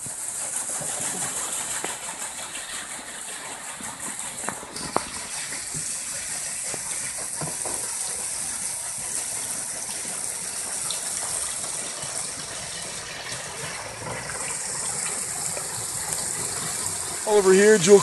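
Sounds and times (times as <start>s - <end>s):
water gushing off waterwheel: 0.0s - 18.0s.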